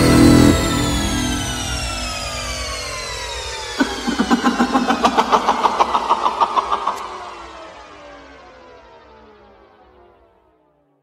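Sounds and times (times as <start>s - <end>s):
rapid rattling pulse: 3.8s - 7.4s
tones gliding downward: 3.8s - 7.6s.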